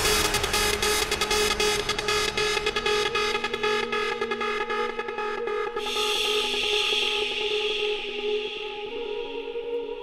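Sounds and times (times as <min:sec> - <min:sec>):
hard house dance music: 0:00.0 - 0:08.8.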